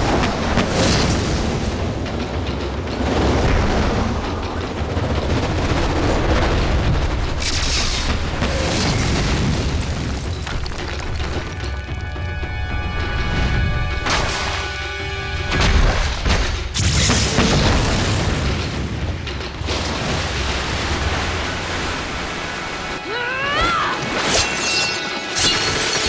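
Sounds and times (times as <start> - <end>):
dramatic score music: 0.0 - 26.0.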